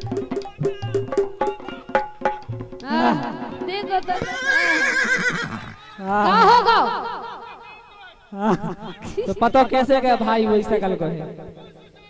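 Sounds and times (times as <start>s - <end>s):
person crying out quavering: 2.8s - 7.4s.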